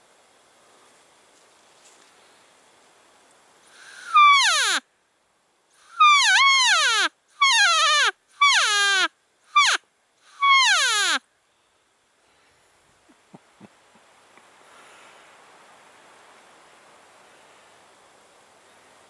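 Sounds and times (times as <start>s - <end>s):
elk call whines sliding down: 3.8s - 4.8s, 5.8s - 11.2s.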